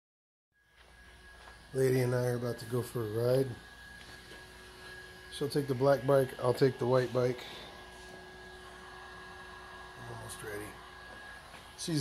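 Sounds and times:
high-pitched whine: 0:00.6 - 0:12.0.

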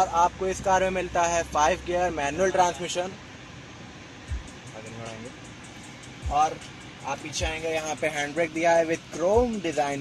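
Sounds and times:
car cabin rumble: 0:00.0 - 0:10.0
faint car stereo music: 0:00.0 - 0:10.0
ticking beat: 0:04.2 - 0:10.0.

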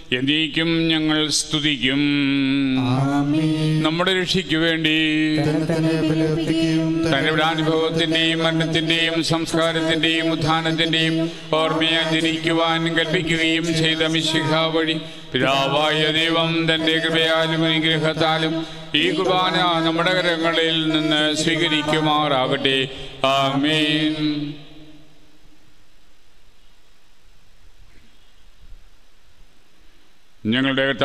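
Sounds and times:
person chanting: 0:00.0 - 0:25.1.

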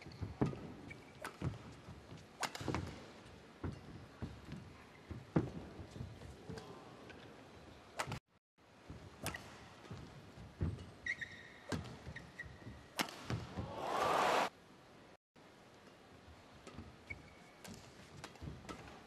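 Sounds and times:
shoes squeaking on court: 0:00.0 - 0:01.8, 0:10.6 - 0:12.9
rackets striking shuttlecock: 0:13.0 - 0:13.7.

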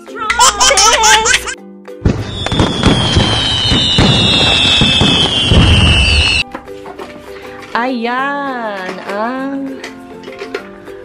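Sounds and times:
fireworks crackling bangs: 0:02.0 - 0:06.4
falling firework whistle: 0:02.0 - 0:06.5.

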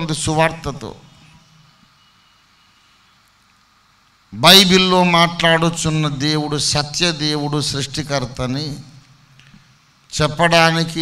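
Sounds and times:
faint low rumble and hiss: 0:00.0 - 0:11.0.

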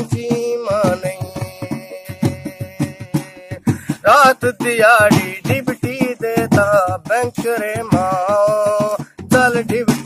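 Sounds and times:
hand drum beating: 0:00.0 - 0:10.0
man singing: 0:00.0 - 0:10.0.

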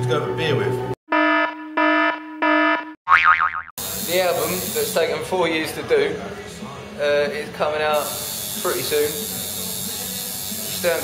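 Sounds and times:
wobbling cartoon boing: 0:03.1 - 0:03.7.

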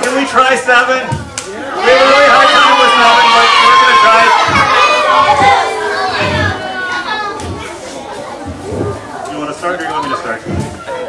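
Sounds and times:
children chattering and calling out: 0:01.5 - 0:11.0
dull low thumps: 0:04.3 - 0:09.0.

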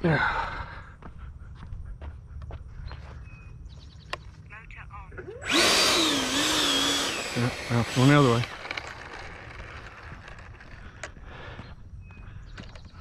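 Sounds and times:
electric ducted fan whine: 0:05.4 - 0:10.6.

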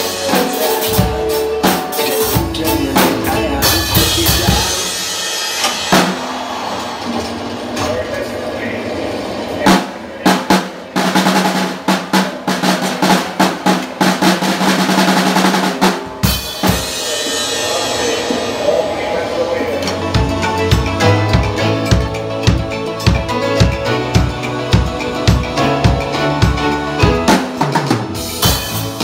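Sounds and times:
drum kit groove: 0:00.0 - 0:08.2, 0:09.5 - 0:29.0.

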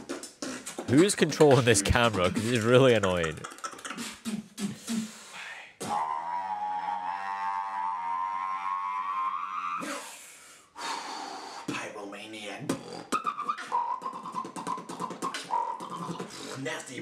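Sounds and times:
beatboxing: 0:00.0 - 0:07.5, 0:09.8 - 0:10.2, 0:10.9 - 0:12.0, 0:12.6 - 0:17.0.

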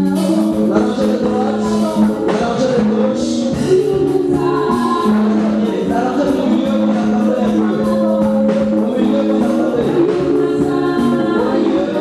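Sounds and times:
choir singing gospel music: 0:00.0 - 0:12.0.

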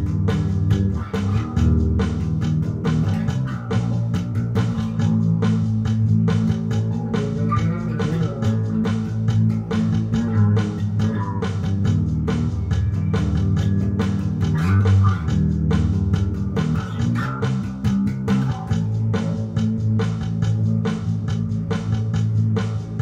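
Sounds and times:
drums keeping a beat: 0:00.0 - 0:23.0
electric bass guitar: 0:00.0 - 0:23.0
guitar: 0:00.0 - 0:23.0
organ: 0:00.0 - 0:23.0.

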